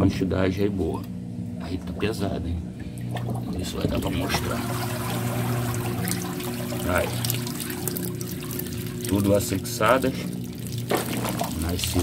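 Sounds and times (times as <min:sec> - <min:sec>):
low steady hum: 0:00.0 - 0:12.0
water trickling into fish tank: 0:02.8 - 0:12.0.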